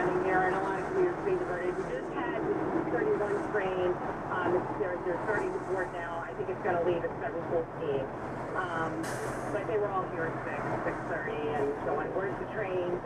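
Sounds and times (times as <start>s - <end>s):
radio speech: 0.0s - 13.0s
truck engine hum: 0.0s - 13.0s.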